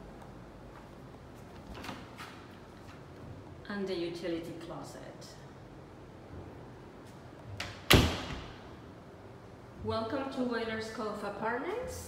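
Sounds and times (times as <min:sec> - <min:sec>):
closet door banging shut: 0:07.6 - 0:08.6.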